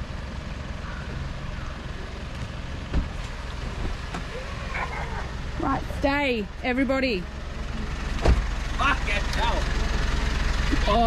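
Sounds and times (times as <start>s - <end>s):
engine rumbling: 0.0s - 11.0s
voices calling out: 4.0s - 11.0s
sharp thump: 8.2s - 8.5s.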